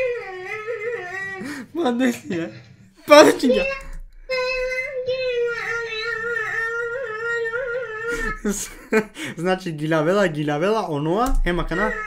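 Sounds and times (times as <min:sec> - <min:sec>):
child singing a long note: 0:00.0 - 0:01.4, 0:03.5 - 0:08.4.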